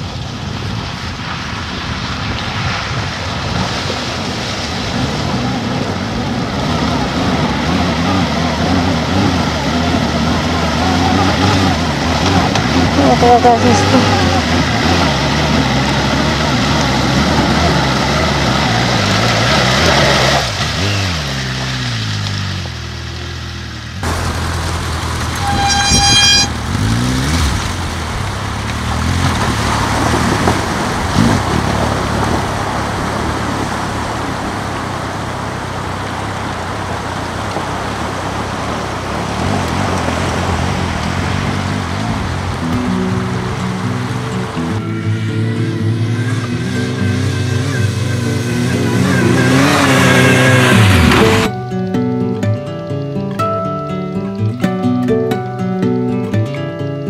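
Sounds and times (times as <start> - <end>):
water splashing and rushing: 0.0 - 52.7
motorcycle engine revving: 4.9 - 51.6
horn toot: 25.3 - 27.4.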